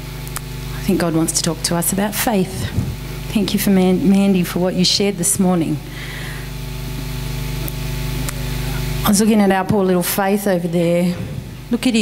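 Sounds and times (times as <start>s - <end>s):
low electrical hum with hiss: 0.0s - 12.0s.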